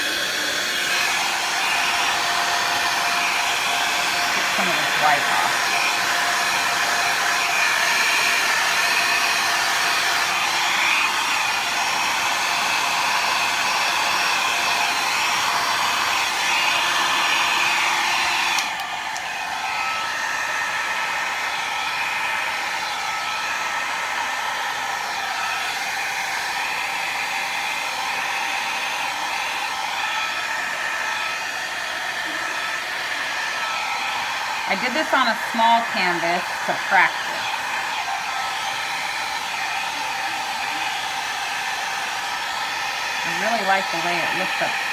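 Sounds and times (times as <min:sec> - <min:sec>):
hair dryer running: 0:00.0 - 0:44.9.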